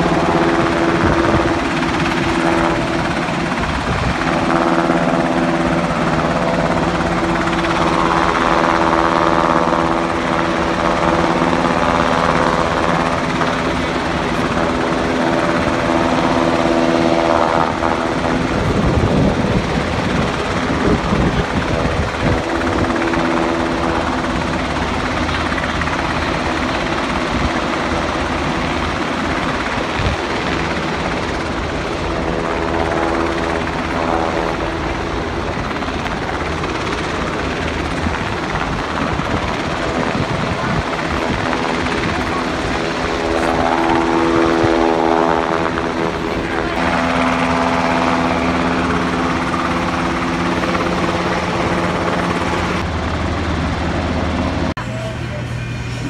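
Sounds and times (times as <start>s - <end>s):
helicopter hovering drone: 0.0s - 56.0s.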